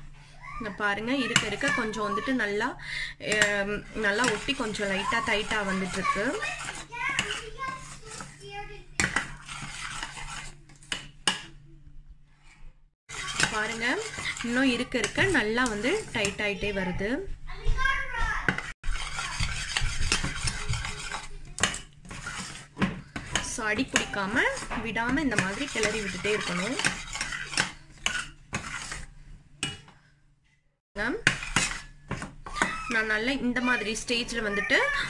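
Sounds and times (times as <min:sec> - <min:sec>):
metal spoon scraping saucepan: 0:03.3 - 0:11.5, 0:13.1 - 0:16.5, 0:18.8 - 0:29.9, 0:31.2 - 0:34.8.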